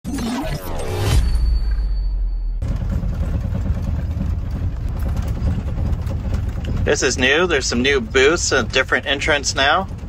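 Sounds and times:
vehicle engine and road noise: 2.6 - 10.0.

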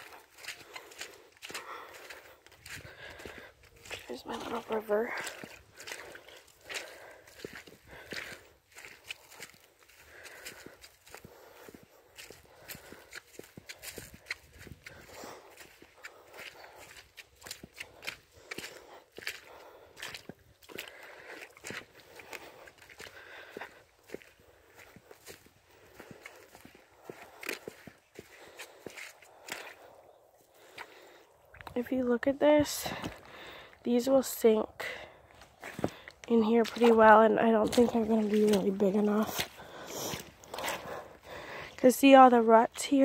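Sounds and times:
footsteps on muddy leafy track: 0.0 - 43.0.

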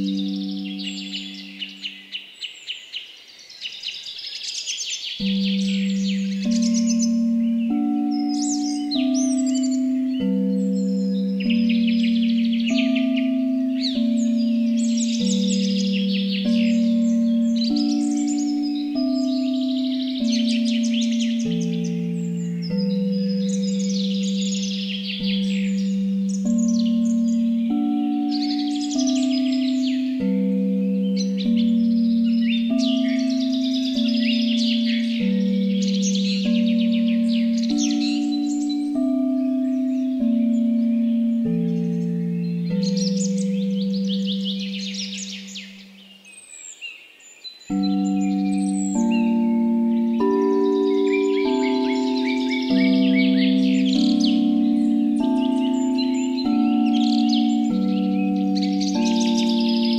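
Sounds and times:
singing bowls ringing: 0.0 - 2.2, 5.2 - 46.3, 47.7 - 59.9
birdsong chirps: 0.0 - 59.9.

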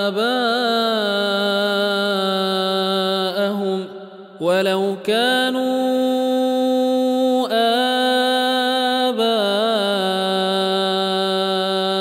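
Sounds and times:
man chanting recitation: 0.0 - 12.0.

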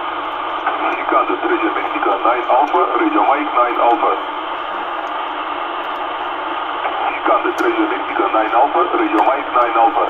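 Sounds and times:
radio band hiss: 0.0 - 10.0
voice over radio: 0.6 - 4.3, 6.8 - 10.0.

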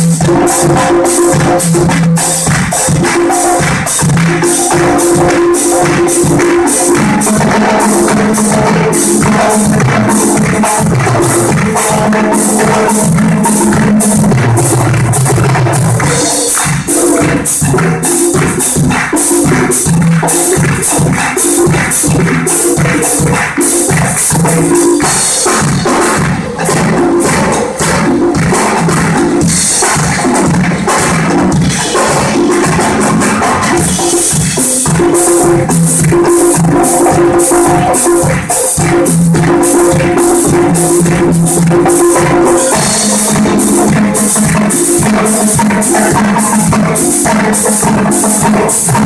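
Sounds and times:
congas timbales and drum kit: 0.0 - 49.0.

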